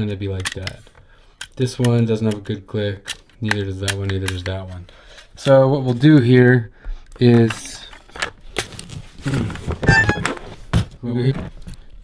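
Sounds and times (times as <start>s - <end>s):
accordion parts clattering: 9.4s - 10.6s
short ringing tone: 9.9s - 10.3s.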